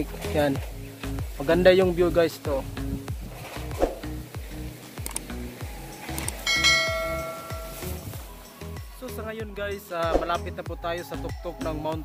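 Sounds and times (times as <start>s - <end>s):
background music with steady beat: 0.0s - 12.0s
bell chime: 6.5s - 8.0s.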